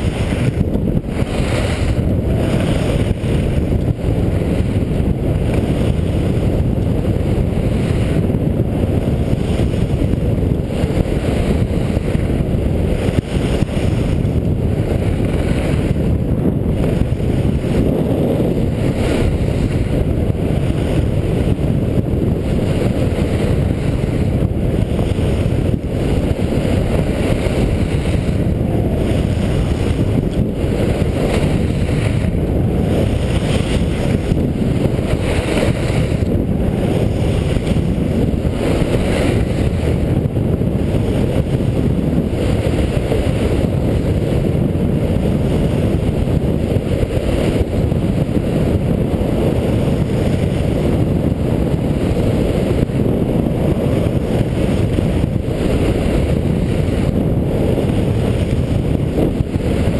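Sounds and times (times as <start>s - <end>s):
skis scraping on snow: 0.0s - 8.3s, 20.6s - 44.7s
wind buffeting microphone: 0.0s - 59.9s.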